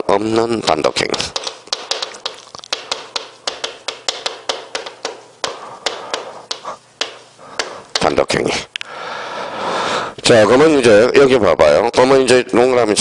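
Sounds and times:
chalk tapping and scratching on chalkboard: 0.7s - 8.4s.

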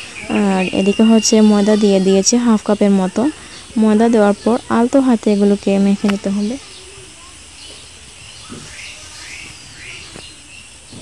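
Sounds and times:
bird chirping: 0.0s - 11.0s
faint steady hiss: 0.0s - 11.0s.

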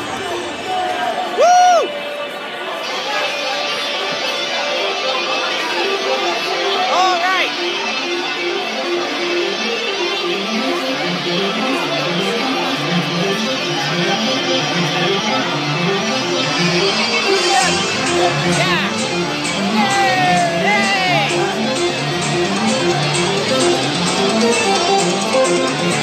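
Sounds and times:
crowd chatter: 0.0s - 26.0s
rhythmic bass line: 7.6s - 26.0s
live band music over pa: 13.5s - 26.0s.

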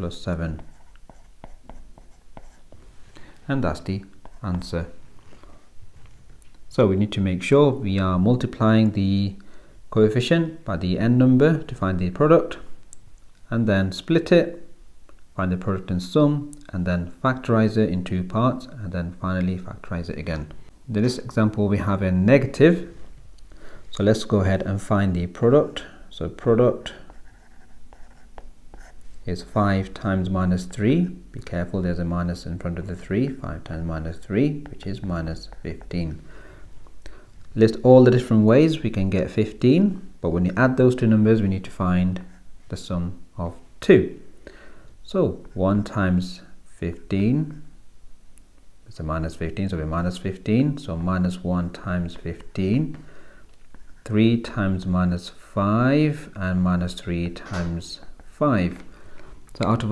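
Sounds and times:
stylus scratching on screen: 0.2s - 2.8s, 3.8s - 4.7s, 26.3s - 30.2s, 53.6s - 55.3s.

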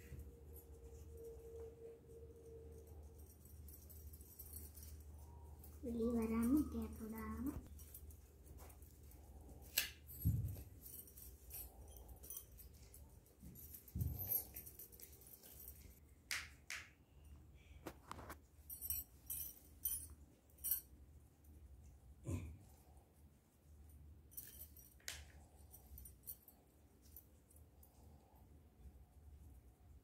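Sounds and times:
small clicks and rustles: 0.0s - 16.1s, 23.6s - 28.5s.

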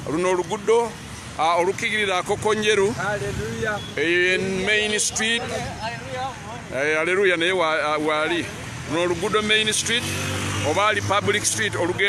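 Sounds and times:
street traffic: 0.0s - 12.0s.

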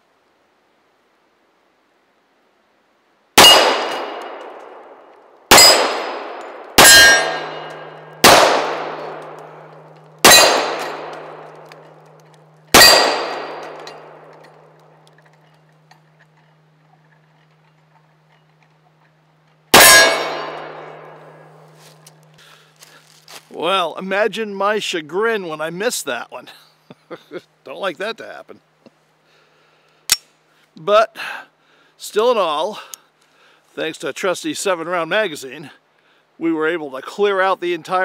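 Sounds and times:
pistol shots: 3.4s - 15.0s, 19.7s - 21.6s
bullets clanging on steel plates: 5.5s - 18.6s, 19.8s - 21.6s.

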